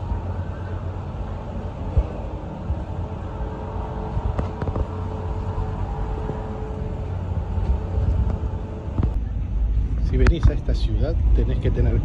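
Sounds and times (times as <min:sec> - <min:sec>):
faint steady hum: 0:00.0 - 0:12.0
low urban rumble: 0:00.0 - 0:12.0.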